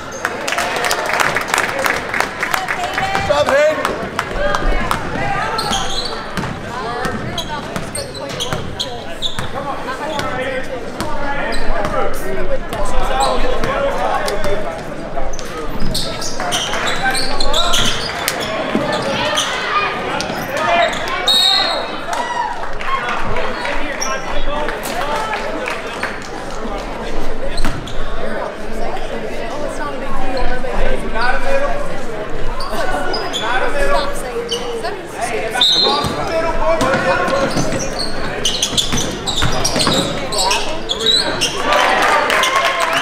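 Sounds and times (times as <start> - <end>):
chatter and calls: 0.0 - 43.0.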